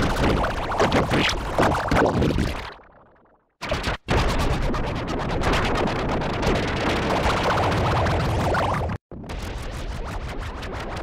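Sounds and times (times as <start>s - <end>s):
stuttering crackle: 3.6s - 11.0s.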